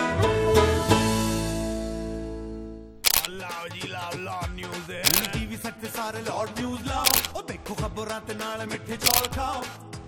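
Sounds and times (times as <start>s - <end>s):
camera shutter click: 3.0s - 3.4s, 5.0s - 5.4s, 7.0s - 7.4s, 9.0s - 9.4s.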